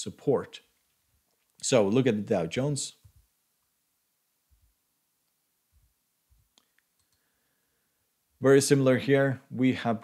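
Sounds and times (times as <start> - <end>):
faint keyboard clicks: 6.5 - 7.3.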